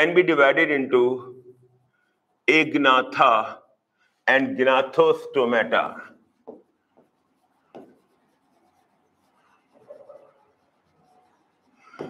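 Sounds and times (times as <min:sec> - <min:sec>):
stylus writing on glass: 0:06.5 - 0:12.0.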